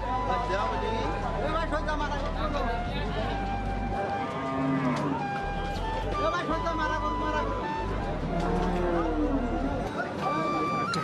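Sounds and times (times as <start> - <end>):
cow mooing: 4.3 - 5.2, 8.3 - 9.7.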